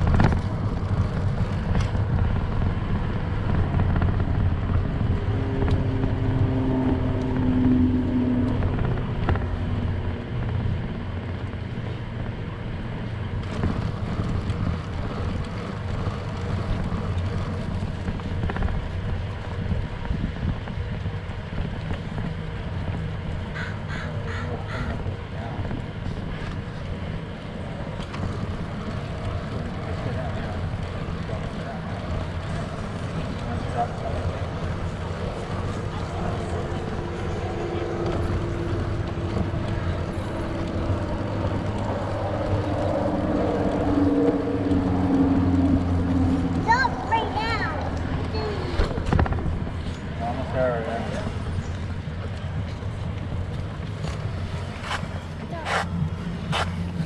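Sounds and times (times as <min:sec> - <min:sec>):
bicycle tyres rolling on pavement: 0:00.0 - 0:57.0
wind rumble on microphone: 0:00.0 - 0:57.0.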